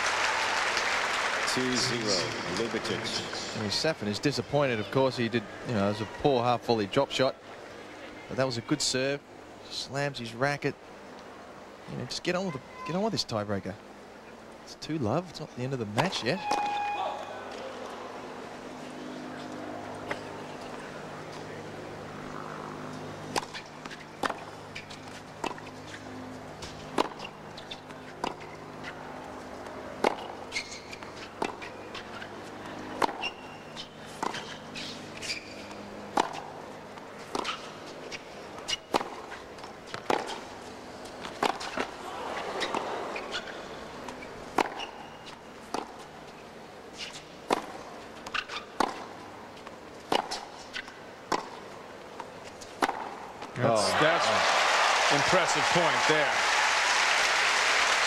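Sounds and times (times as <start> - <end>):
low crowd background: 0.0 - 16.0, 17.0 - 58.0
racket hitting tennis ball: 23.3 - 25.8, 26.6 - 28.6, 29.6 - 32.3, 33.0 - 36.6, 37.2 - 46.1, 46.9 - 51.6, 52.2 - 53.2.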